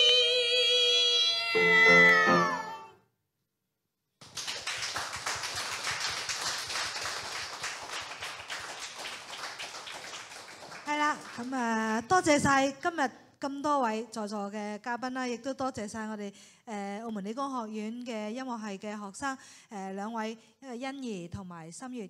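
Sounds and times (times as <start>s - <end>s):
audience applause: 4.2s - 11.6s.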